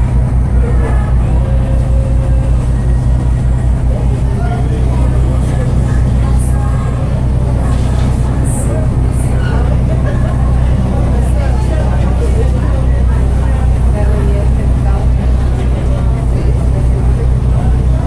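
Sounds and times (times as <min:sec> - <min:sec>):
boat engine humming: 0:00.0 - 0:18.0
passengers chattering: 0:00.0 - 0:18.0.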